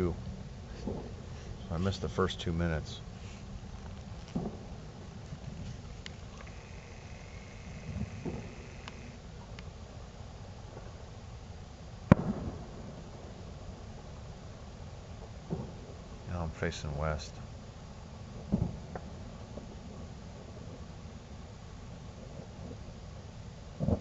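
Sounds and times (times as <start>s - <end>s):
distant fireworks popping: 0.0s - 9.7s, 12.0s - 14.2s, 15.1s - 17.2s, 18.2s - 21.2s, 22.1s - 24.0s
loud firework bang: 12.1s - 13.0s.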